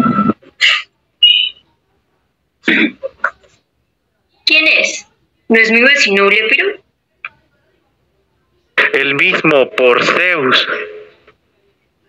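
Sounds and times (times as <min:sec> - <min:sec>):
cough-like vocal sounds: 0:02.6 - 0:03.1.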